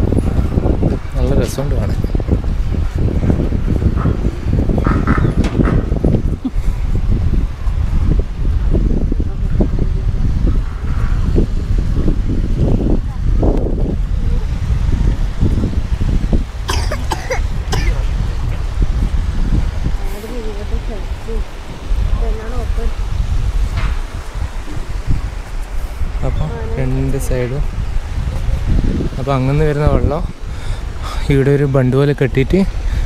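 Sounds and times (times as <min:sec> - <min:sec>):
wind buffeting microphone: 0:00.0 - 0:33.0
people talking indistinctly: 0:19.9 - 0:23.2, 0:26.0 - 0:32.7.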